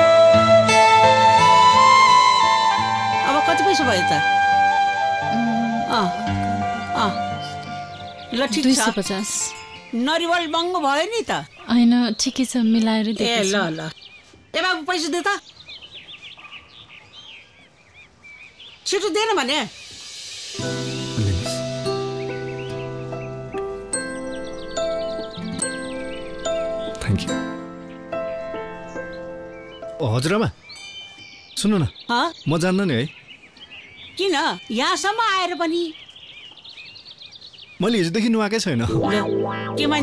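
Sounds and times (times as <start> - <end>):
faint outdoor background noise: 1.4 - 40.0
small birds chirping: 2.0 - 40.0
man's voice: 21.2 - 21.8, 37.8 - 40.0.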